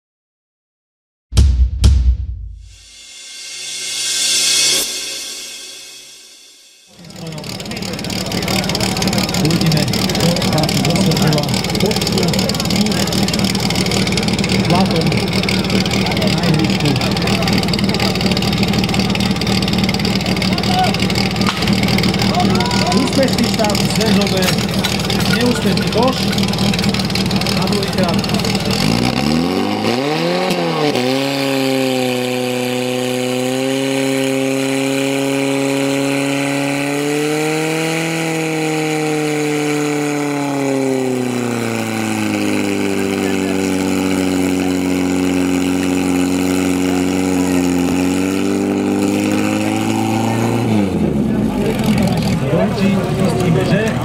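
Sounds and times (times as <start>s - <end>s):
pump engine revving: 6.9s - 54.0s
people shouting: 20.5s - 23.4s.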